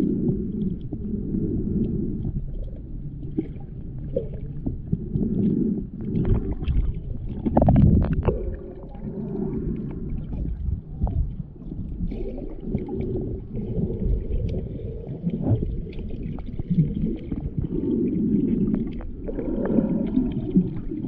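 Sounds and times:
muffled underwater rumble: 0.0 - 21.0
underwater clicks and crackles: 0.0 - 21.0.

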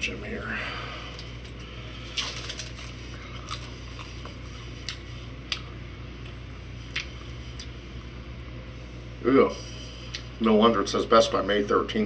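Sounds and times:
plastic wrapper crinkling: 2.0 - 3.8.

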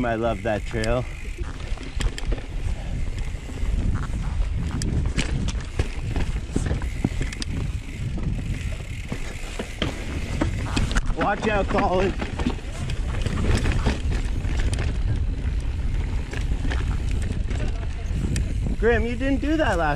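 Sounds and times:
mountain bike rattling over rocks: 0.0 - 19.9.

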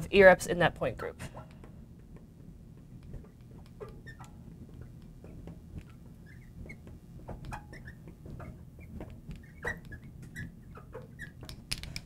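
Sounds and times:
marker squeaking on glass: 3.2 - 5.0, 6.2 - 11.6.

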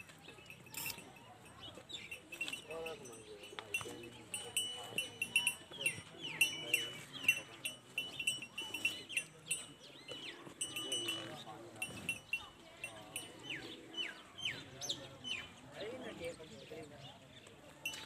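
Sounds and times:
murmur of voices: 0.0 - 18.0
small birds chirping: 0.0 - 18.0.

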